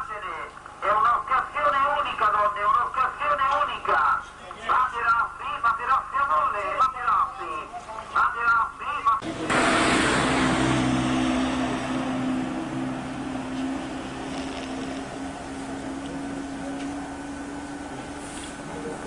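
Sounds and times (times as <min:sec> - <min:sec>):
man speaking: 0:00.0 - 0:09.2
vehicle engine humming: 0:09.2 - 0:19.0.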